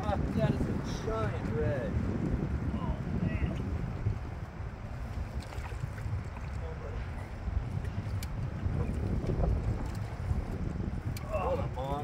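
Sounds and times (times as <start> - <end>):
wind rumble on microphone: 0.0 - 12.0
water sloshing against boat: 2.9 - 12.0.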